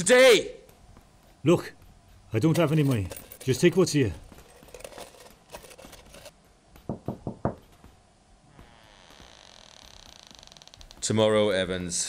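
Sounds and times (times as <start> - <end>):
handling noise: 2.4 - 6.4.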